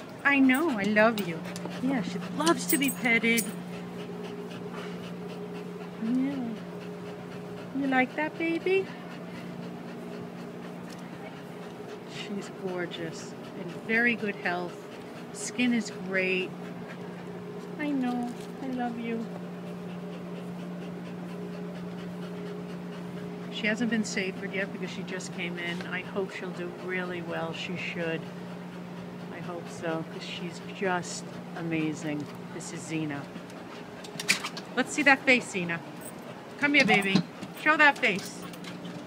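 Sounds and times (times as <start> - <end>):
dog panting: 0.0 - 39.0
steady low hum: 0.0 - 39.0.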